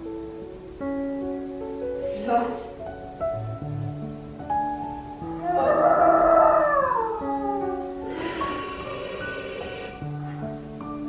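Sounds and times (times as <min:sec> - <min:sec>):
soft piano music: 0:00.0 - 0:11.0.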